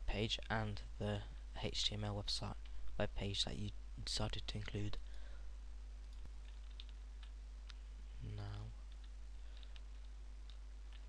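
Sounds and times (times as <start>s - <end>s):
low electrical hum: 0.0s - 11.0s
keyboard and mouse clicks: 6.0s - 7.8s, 8.5s - 11.0s.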